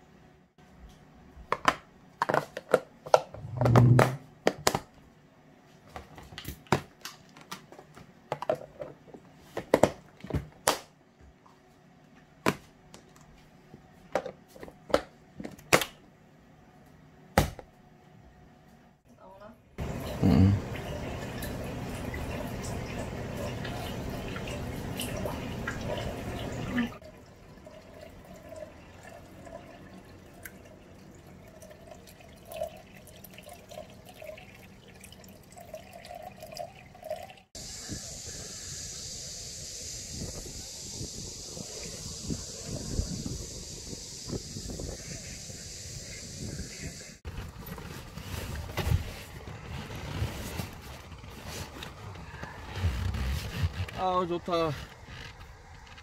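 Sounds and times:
plastic containers clacking: 1.5 - 4.9
water trickling and dripping: 19.8 - 47.1
steady outdoor hiss: 37.6 - 47.2
wind gusting on microphone: 39.9 - 47.2.

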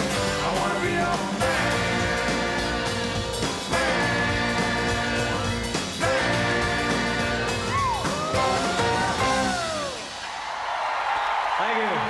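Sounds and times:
live rock band: 0.0 - 10.2
audience cheering and applauding: 5.9 - 12.0
person whooping: 7.6 - 10.1.

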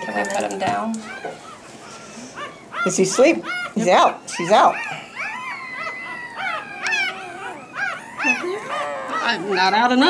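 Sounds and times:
puppy crying high-pitched squeals: 0.0 - 10.0.

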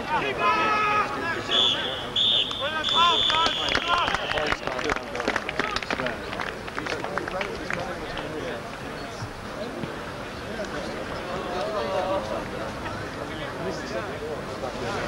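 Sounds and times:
crowd noise: 0.0 - 15.0
people shouting: 0.1 - 4.3
referee's whistle blasts: 1.4 - 4.4
scattered clapping: 2.4 - 8.8.

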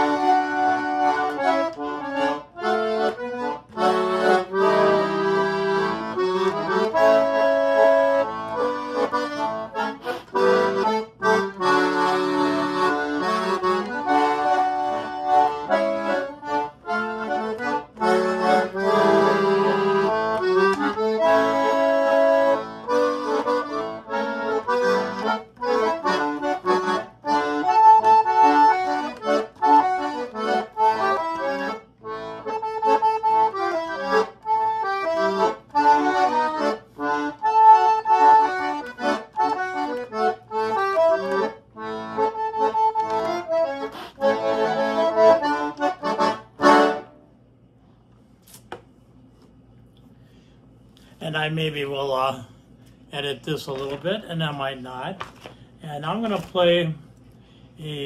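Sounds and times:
concertina dance tune: 0.0 - 47.1.

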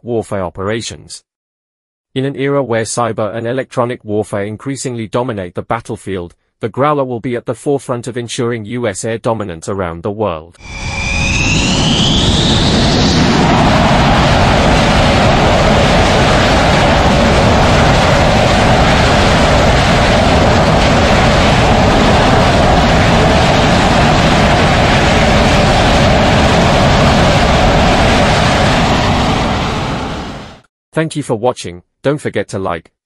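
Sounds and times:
jet engine roar: 10.6 - 30.7.

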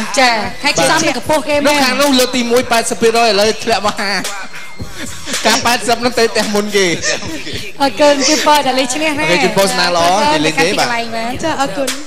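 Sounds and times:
people talking: 0.0 - 4.3, 5.0 - 12.0
background music: 0.0 - 12.0
people laughing: 4.0 - 11.0.

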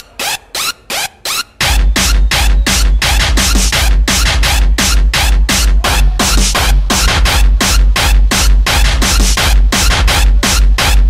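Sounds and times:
fast electronic dance music: 0.0 - 11.0
pitch-dropping kick drum: 1.6 - 11.0.

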